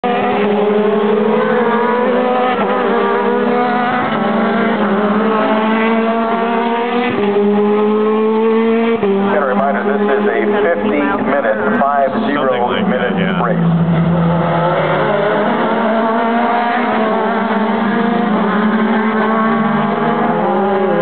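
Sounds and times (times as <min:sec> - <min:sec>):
race car engine at high revs: 0:00.0 - 0:21.0.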